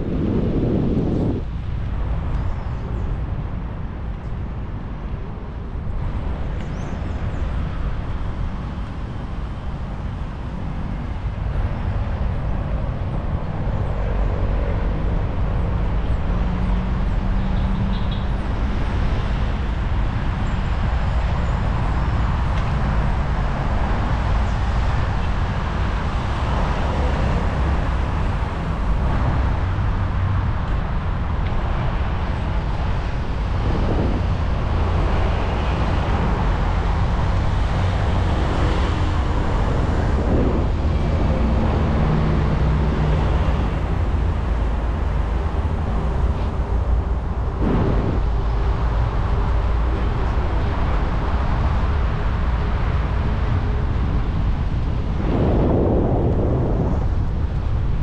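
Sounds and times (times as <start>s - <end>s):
traffic rumble: 0.0s - 58.0s
wind on microphone: 0.0s - 58.0s
cars passing: 4.8s - 58.0s.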